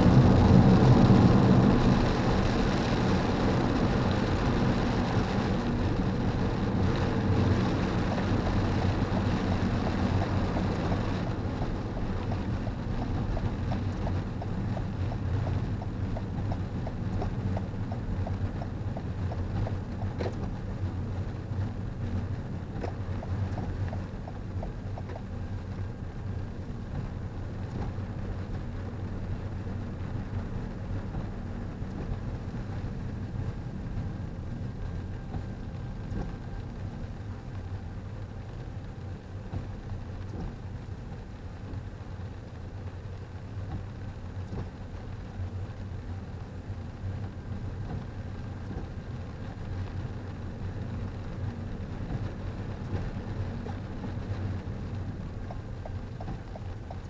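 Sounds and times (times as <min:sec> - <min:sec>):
car cabin hum on wet pavement: 0:00.0 - 0:57.0
faint ticks: 0:13.0 - 0:20.6.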